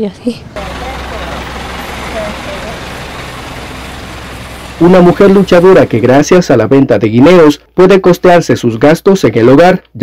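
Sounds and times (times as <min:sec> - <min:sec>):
faint distant voices: 0:00.0 - 0:06.2
vehicle engine idling: 0:00.0 - 0:06.4.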